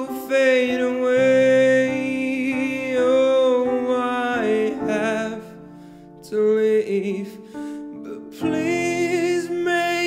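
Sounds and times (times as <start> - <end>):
digital piano chords: 0.0 - 10.0.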